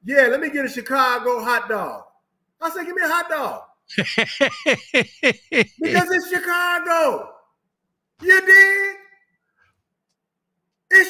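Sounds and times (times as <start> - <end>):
man speaking: 2.7 - 7.3.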